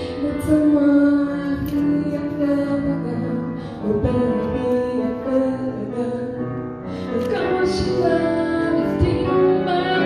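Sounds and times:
girl singing into microphone: 0.0 - 10.0
piano accompaniment: 0.0 - 10.0.

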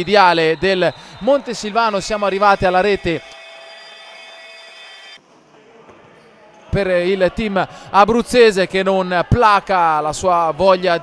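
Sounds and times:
indoor hall room sound: 0.0 - 11.0.

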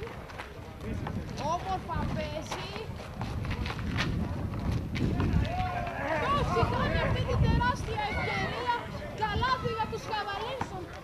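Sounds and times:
running footsteps: 0.0 - 11.0.

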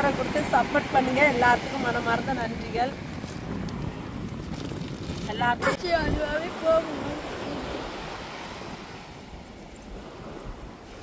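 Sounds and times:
surf washing on shore: 0.0 - 11.0
wind buffeting microphone: 0.0 - 11.0.

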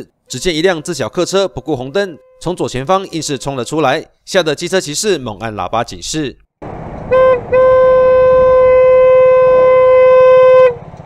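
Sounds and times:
motorcycle horn blast: 2.1 - 2.6, 7.1 - 10.8.

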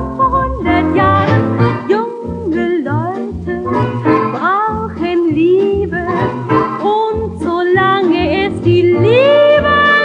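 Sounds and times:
dance orchestra music on gramophone: 0.0 - 10.0.

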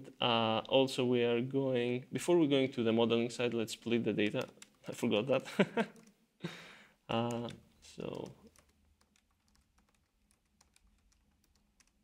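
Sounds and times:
computer keyboard keystrokes: 4.2 - 4.8, 7.2 - 12.0.

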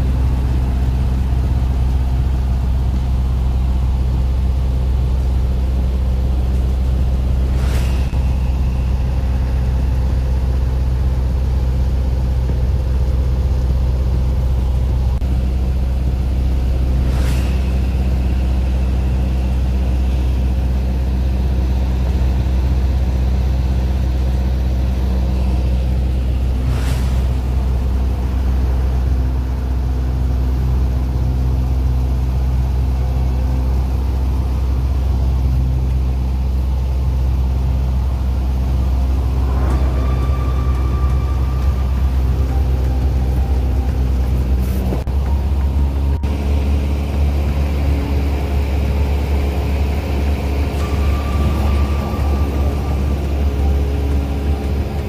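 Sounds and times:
airplane engine and propeller droning: 0.0 - 55.0
faint high tone: 38.8 - 46.4, 50.6 - 55.0.

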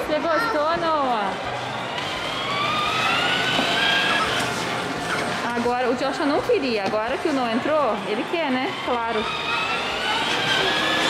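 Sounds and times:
toy car motor whine: 1.8 - 5.2, 7.2 - 11.0.

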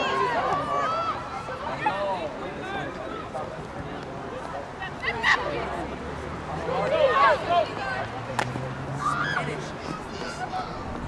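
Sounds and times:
distant voices of players: 0.0 - 11.0.

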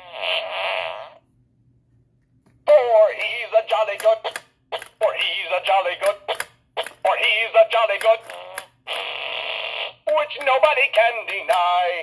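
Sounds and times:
toy playing fart sound: 0.0 - 1.2, 8.2 - 10.2.

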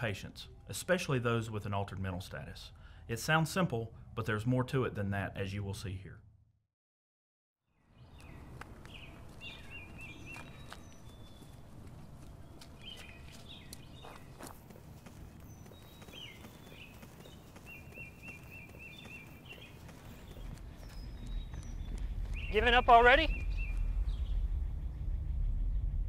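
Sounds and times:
birds trilling and chirping: 7.8 - 25.9
footsteps jogging on dirt: 8.0 - 23.9
low steady rumble: 23.3 - 26.0.

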